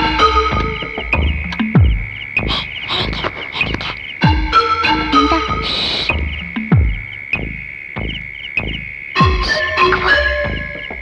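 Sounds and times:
steady high tone: 0:00.0 - 0:01.4, 0:02.4 - 0:06.7, 0:09.2 - 0:11.0
frogs croaking: 0:00.0 - 0:11.0.

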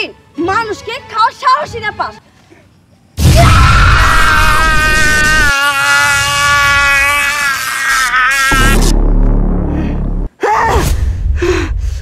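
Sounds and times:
low rumbling sound effect: 0:08.6 - 0:12.0
woman gasping and breathing hard: 0:09.8 - 0:12.0.

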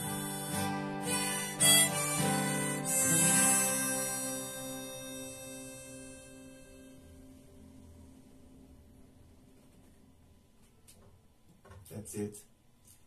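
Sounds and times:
harmonica: 0:00.0 - 0:07.4
strummed acoustic guitar: 0:00.0 - 0:07.7.

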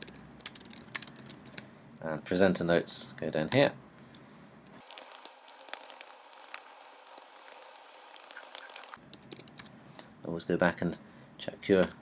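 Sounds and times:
fast typing on keyboard: 0:00.0 - 0:01.7, 0:05.8 - 0:09.7.

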